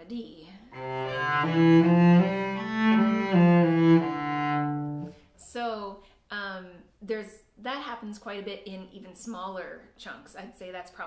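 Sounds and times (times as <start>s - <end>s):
bowed cello scale: 0.7s - 5.2s.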